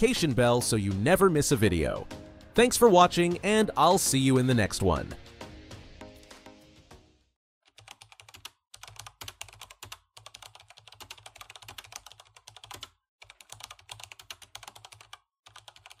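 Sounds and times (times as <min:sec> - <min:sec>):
rapid keyboard typing: 0:07.7 - 0:16.0.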